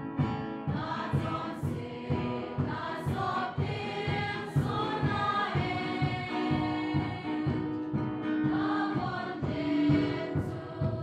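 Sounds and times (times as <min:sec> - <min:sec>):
steady drum beat: 0:00.0 - 0:11.0
choir singing a hymn: 0:00.6 - 0:11.0.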